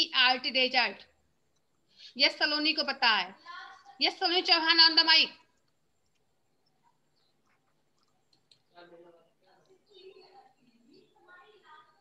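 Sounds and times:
woman speaking: 0.0 - 1.1, 2.1 - 5.5
faint clicks: 5.5 - 8.8
faint voice: 8.8 - 12.0.

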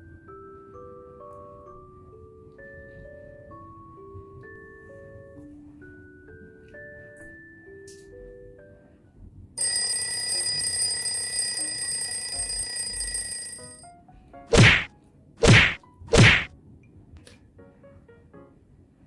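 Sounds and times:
alarm clock ringing: 9.6 - 13.8
cartoon whack sound effects: 14.5 - 16.5.

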